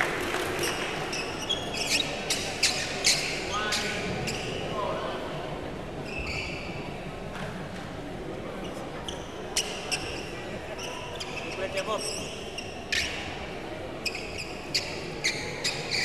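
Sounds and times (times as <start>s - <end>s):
talk in a hall: 0.0s - 16.0s
sneaker squeaks on court floor: 0.6s - 4.7s, 6.1s - 6.8s, 8.6s - 13.3s, 14.0s - 16.0s.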